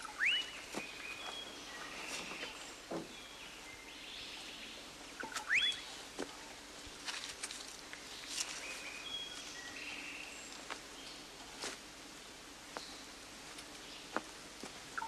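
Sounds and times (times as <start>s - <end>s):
birds calling: 0.0s - 6.6s
quick rising bird whistle: 5.2s - 5.8s.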